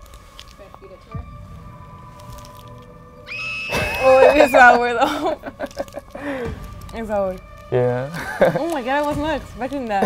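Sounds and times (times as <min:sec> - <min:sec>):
candy wrapper rustling: 0:00.0 - 0:00.8, 0:02.0 - 0:03.0, 0:05.0 - 0:07.7, 0:08.3 - 0:09.9
quiet background music: 0:00.0 - 0:10.0
woman reacting: 0:03.8 - 0:06.3.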